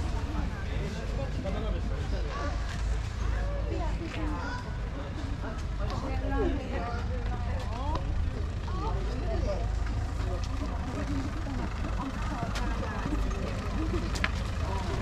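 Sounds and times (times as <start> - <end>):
car engine rumble: 0.0 - 15.0
people talking: 0.0 - 15.0.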